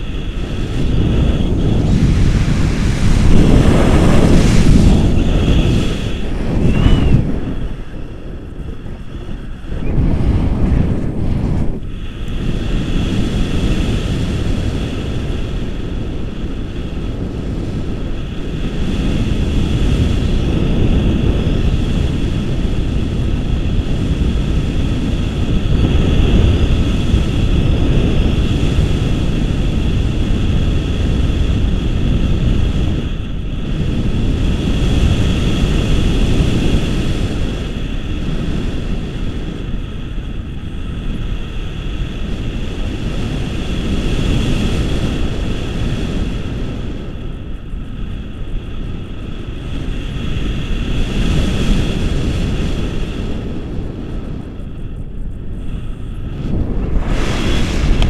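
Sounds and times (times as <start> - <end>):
thin steady whine: 0.0 - 58.0
wind buffeting microphone: 0.0 - 58.0.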